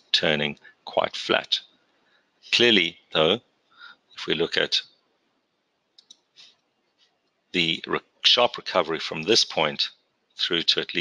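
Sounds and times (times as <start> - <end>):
faint clicks: 5.9 - 6.6.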